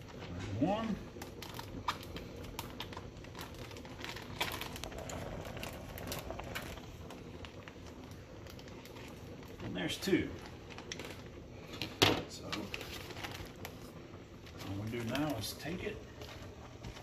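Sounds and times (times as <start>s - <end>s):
plastic bag crinkling: 0.0s - 17.0s.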